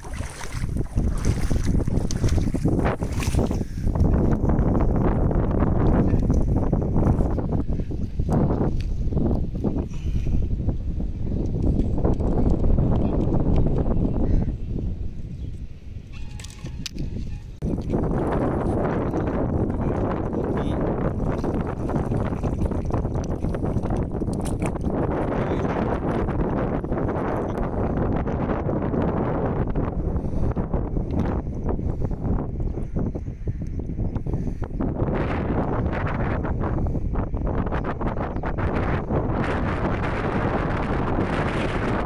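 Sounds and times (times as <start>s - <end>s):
water sloshing and splashing: 0.0s - 4.3s, 21.1s - 25.0s
wind buffeting microphone: 0.0s - 42.0s.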